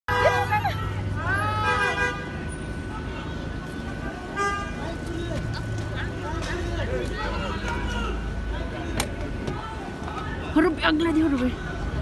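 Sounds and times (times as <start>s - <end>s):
idling engines: 0.1s - 12.0s
traffic rumble: 0.1s - 12.0s
vehicle horn: 1.5s - 2.5s, 4.3s - 4.9s.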